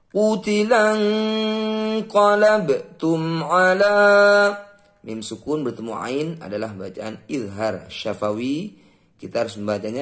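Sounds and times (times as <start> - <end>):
man chanting melodic recitation: 0.0 - 10.0.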